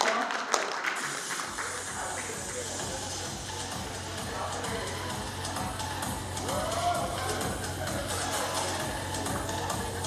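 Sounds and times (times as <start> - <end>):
audience applauding: 0.0 - 2.8
music: 0.0 - 10.0.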